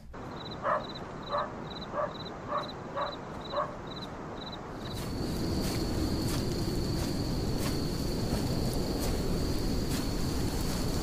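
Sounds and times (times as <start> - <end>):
insects chirping: 0.0 - 11.0
dog barking: 0.6 - 3.8.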